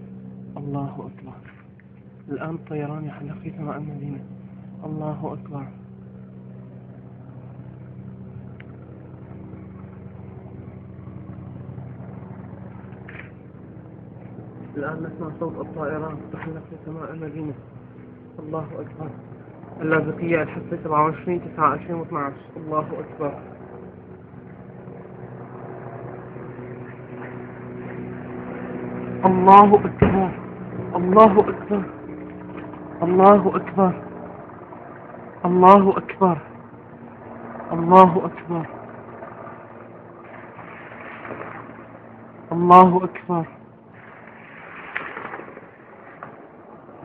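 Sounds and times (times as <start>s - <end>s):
low aircraft engine drone: 0.0s - 47.0s.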